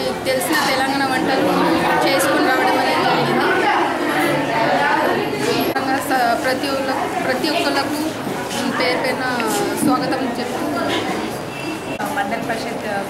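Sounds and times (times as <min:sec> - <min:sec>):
woman talking: 0:00.0 - 0:03.8, 0:05.6 - 0:11.3, 0:12.0 - 0:13.0
chatter of many voices: 0:00.0 - 0:13.0.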